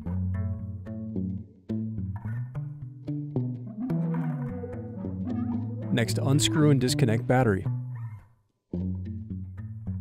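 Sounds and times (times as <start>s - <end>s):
background music melody: 0.0s - 10.0s.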